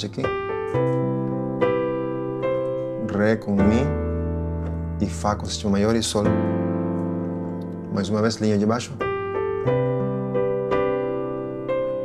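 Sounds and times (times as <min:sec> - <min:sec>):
piano chord on digital keyboard: 0:00.0 - 0:12.0.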